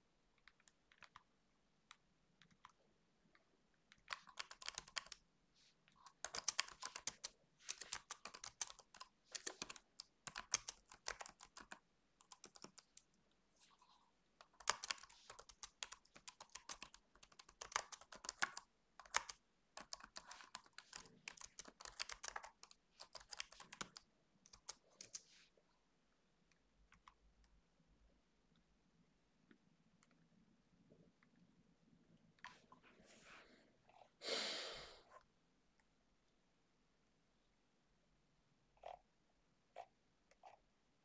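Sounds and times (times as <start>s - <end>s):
computer keyboard typing: 0.3s - 2.8s, 3.9s - 5.2s, 6.0s - 13.2s, 14.4s - 25.3s, 26.9s - 27.6s.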